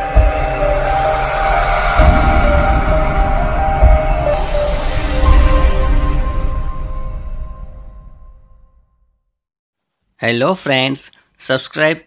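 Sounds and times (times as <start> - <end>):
deep hit: 0.0 - 8.8
intro music with held notes: 0.0 - 9.1.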